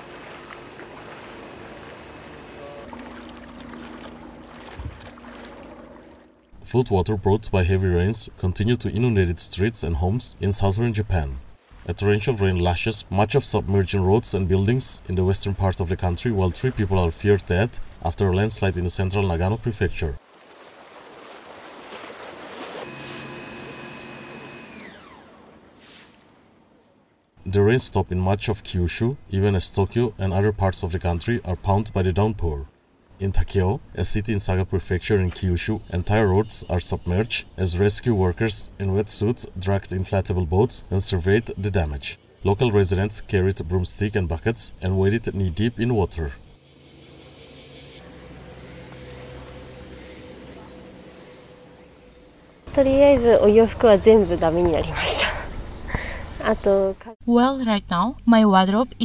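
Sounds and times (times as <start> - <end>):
water splashing and sloshing: 0.0 - 6.7, 11.4 - 12.4, 15.6 - 19.1, 20.2 - 23.4, 24.6 - 27.4
distant engine hum: 0.0 - 7.8, 44.7 - 56.8
steady high whine: 0.0 - 11.0, 22.8 - 25.5, 38.3 - 56.8
outdoor background noise: 0.0 - 59.0.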